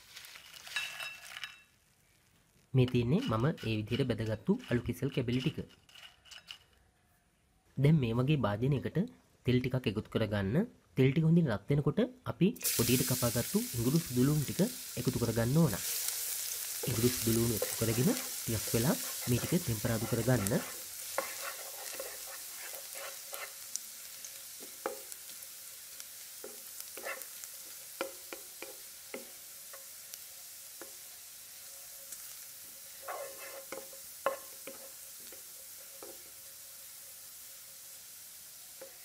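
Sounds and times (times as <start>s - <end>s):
garlic sizzling in hot oil: 0.0s - 6.1s, 12.6s - 39.0s
spatula scraping and tapping pan: 2.9s - 6.8s, 16.5s - 23.9s, 24.5s - 25.2s, 26.4s - 30.2s, 32.1s - 36.3s, 38.8s - 39.0s.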